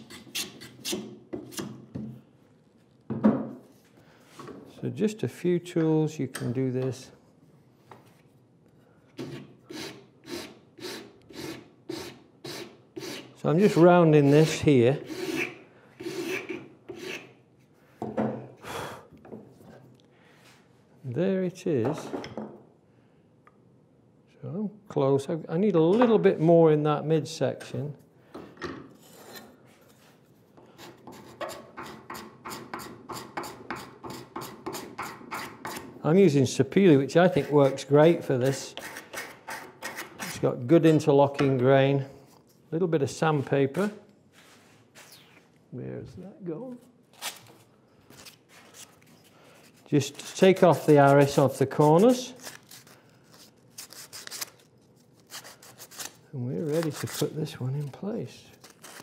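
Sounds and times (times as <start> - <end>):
file scraping wood: 9.2 - 17.4, 30.8 - 36.0, 37.2 - 41.0.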